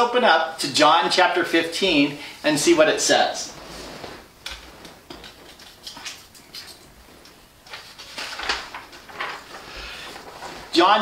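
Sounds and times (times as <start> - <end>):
paper rustling and crinkling: 3.6 - 11.0.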